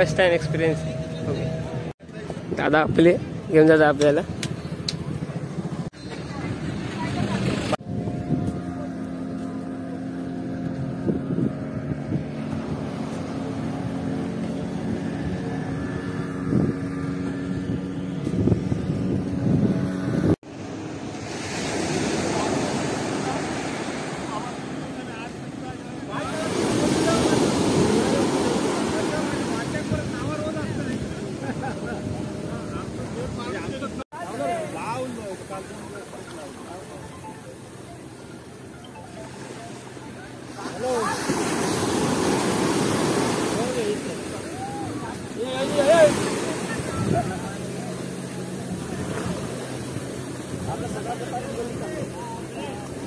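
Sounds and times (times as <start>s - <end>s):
engine hum with knocks: 3.9s - 6.4s
sea surf breaking on sand: 20.5s - 37.2s, 40.5s - 53.0s.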